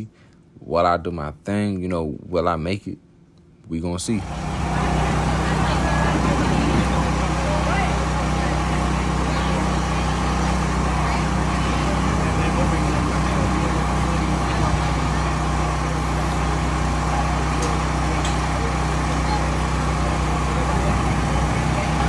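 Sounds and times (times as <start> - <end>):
low engine-like hum: 4.0 - 22.0
people talking indistinctly: 4.1 - 22.0.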